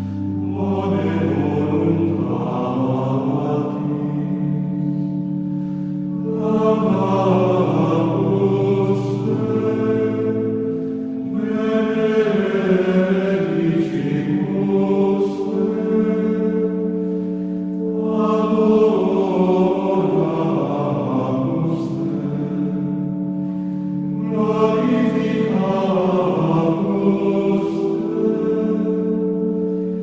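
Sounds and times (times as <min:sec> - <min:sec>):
low drone notes: 0:00.0 - 0:30.0
slow choral singing: 0:00.0 - 0:30.0.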